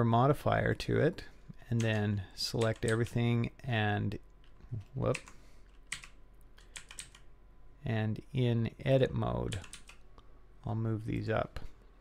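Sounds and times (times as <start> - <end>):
computer keyboard keystrokes: 4.4 - 7.3, 9.5 - 10.0.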